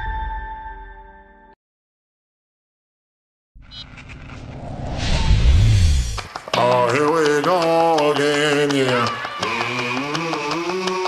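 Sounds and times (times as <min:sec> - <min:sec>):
whooshing riser: 0:03.7 - 0:06.3
deep rumble: 0:03.8 - 0:06.3.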